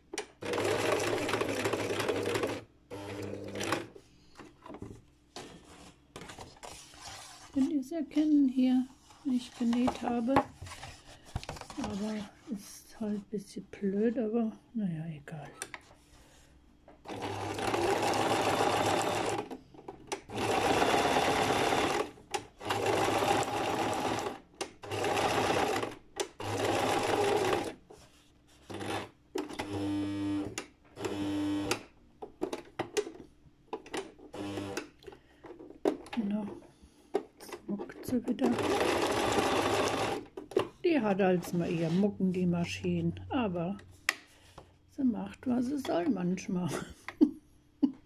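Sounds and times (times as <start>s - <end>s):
sewing machine stitching: 0.4s - 4.0s, 17.1s - 19.6s, 20.2s - 27.8s, 28.6s - 31.8s, 34.3s - 34.8s, 38.2s - 40.3s.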